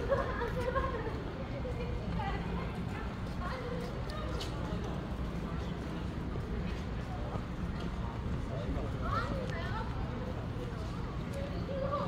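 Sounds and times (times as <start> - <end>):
faint indistinct voices: 0.0 - 12.0
low street rumble: 0.0 - 12.0.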